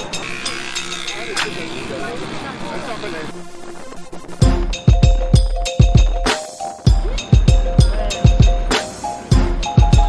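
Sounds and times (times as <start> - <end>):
moving car noise: 0.0 - 4.4.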